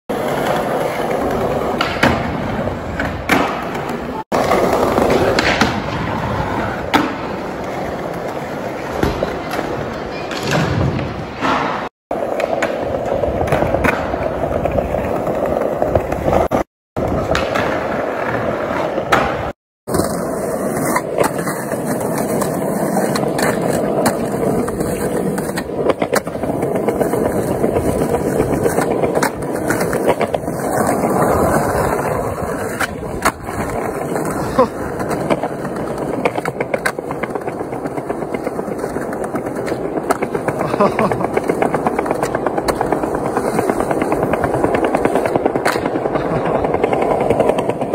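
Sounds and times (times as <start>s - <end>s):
skateboard popping and landing: 0.1s - 47.9s
skateboard wheels rolling on concrete: 0.1s - 47.9s.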